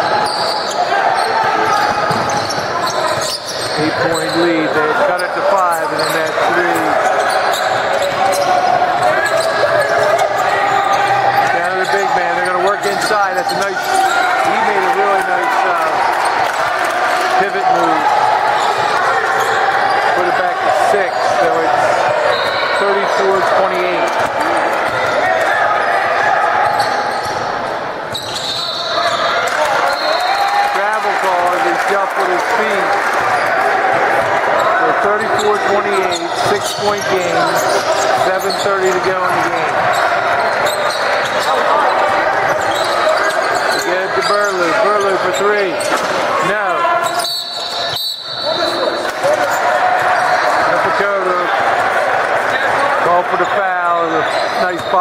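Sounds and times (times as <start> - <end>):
overlapping voices in gym: 0.8 - 26.6, 29.3 - 47.0, 48.6 - 54.2.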